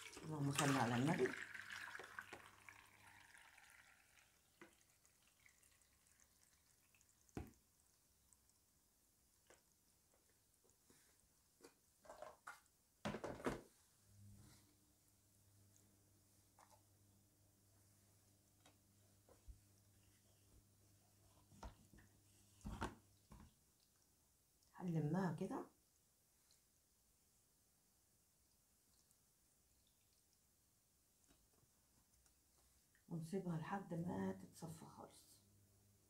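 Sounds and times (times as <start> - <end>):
liquid trickling into bowl: 0.0 - 7.6.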